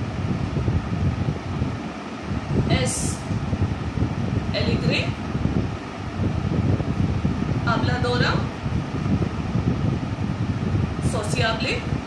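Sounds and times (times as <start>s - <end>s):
low rumbling background noise: 0.0s - 12.0s
speech: 2.7s - 3.3s, 4.5s - 5.2s, 7.6s - 8.5s, 11.0s - 12.0s.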